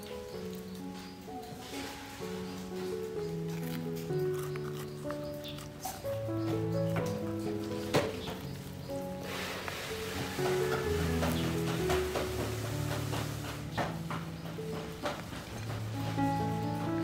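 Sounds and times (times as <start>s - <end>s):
background music with held notes: 0.0s - 17.0s
bread crust crackling as torn: 1.7s - 7.8s.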